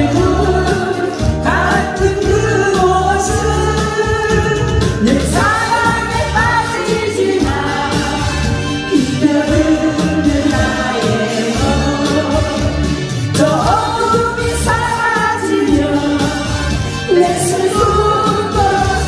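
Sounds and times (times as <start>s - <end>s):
keyboard accompaniment with bass: 0.0s - 19.0s
woman singing into microphone: 0.0s - 19.0s.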